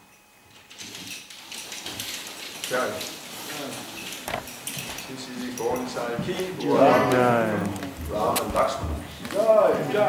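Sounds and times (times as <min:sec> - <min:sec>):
faint voices: 0:06.6 - 0:08.8.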